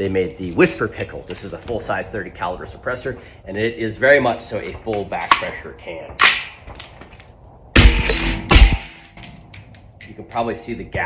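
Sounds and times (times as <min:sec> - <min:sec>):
suppressed rifle shots: 0:07.8 - 0:09.0.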